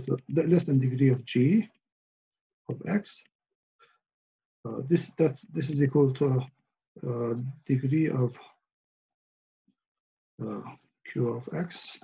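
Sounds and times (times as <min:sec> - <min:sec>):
man saying uh: 0:00.0 - 0:01.6, 0:02.7 - 0:03.2, 0:04.7 - 0:06.4, 0:07.0 - 0:08.4, 0:10.4 - 0:12.0.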